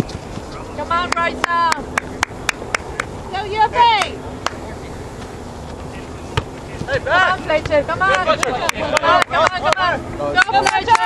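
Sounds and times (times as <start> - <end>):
outdoor field background noise: 0.0 - 11.0
soccer ball kicked thud: 6.3 - 7.8.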